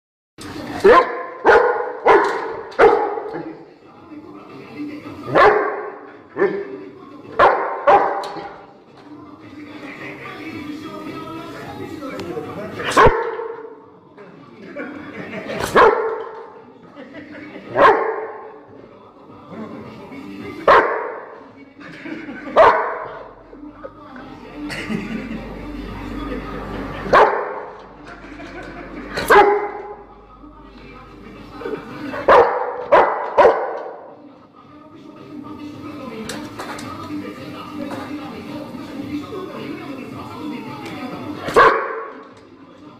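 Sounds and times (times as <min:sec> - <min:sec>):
dog barking: 0:00.8 - 0:03.4, 0:05.3 - 0:06.6, 0:07.4 - 0:08.5, 0:12.9 - 0:13.6, 0:15.6 - 0:16.4, 0:17.8 - 0:18.5, 0:20.7 - 0:21.2, 0:22.6 - 0:23.2, 0:27.1 - 0:27.6, 0:29.2 - 0:29.9, 0:32.2 - 0:34.0, 0:41.5 - 0:42.2.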